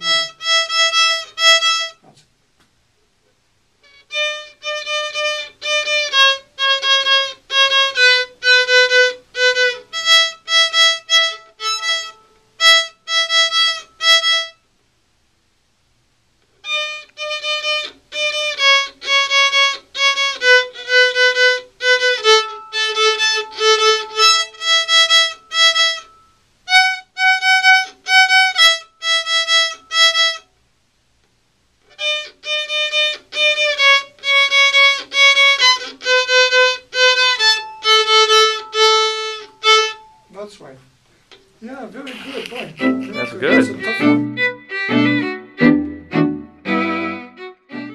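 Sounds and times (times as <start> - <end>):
violin melody in short strokes: 0.0 - 2.1, 3.9 - 14.6, 16.6 - 30.5, 31.9 - 40.4, 42.0 - 47.9.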